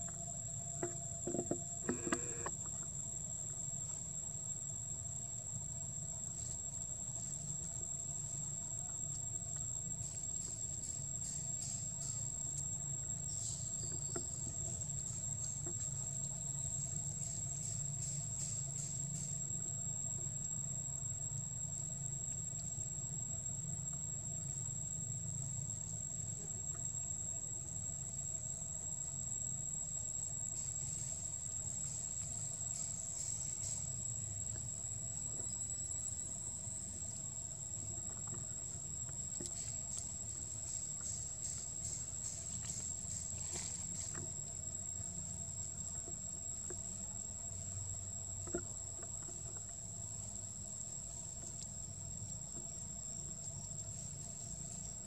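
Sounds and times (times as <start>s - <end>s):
forest insects droning: 0.0s - 55.0s.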